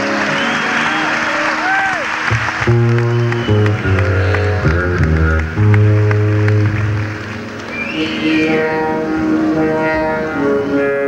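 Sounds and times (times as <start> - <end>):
crowd cheering: 0.0 - 10.1
bass guitar low notes: 2.3 - 11.0.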